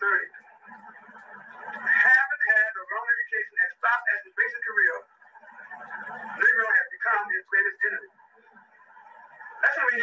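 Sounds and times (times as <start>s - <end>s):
man speaking on old recording: 0.0s - 0.4s, 1.8s - 5.1s, 6.4s - 8.1s, 9.6s - 10.0s.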